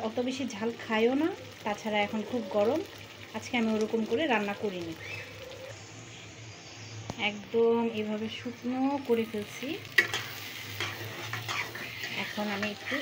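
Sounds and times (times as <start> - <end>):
curry sizzling in a pot: 0.0 - 13.0.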